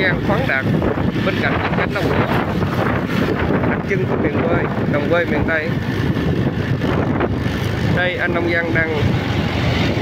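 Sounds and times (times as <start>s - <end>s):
motorbike running: 0.0s - 10.0s
wind buffeting microphone: 0.0s - 10.0s.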